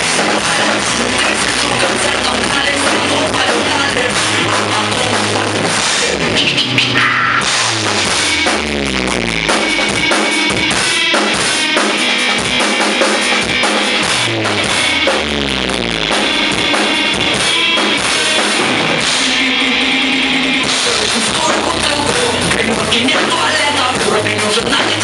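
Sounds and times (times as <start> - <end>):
drum hits and cymbal crashes: 0.0 - 19.4
falling bass line: 0.0 - 25.0
rock backing track: 0.0 - 25.0.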